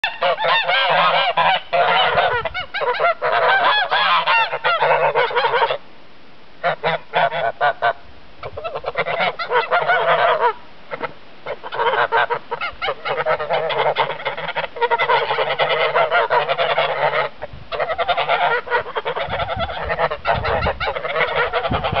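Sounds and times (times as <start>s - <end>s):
geese honking: 0.0s - 5.8s, 6.6s - 22.0s.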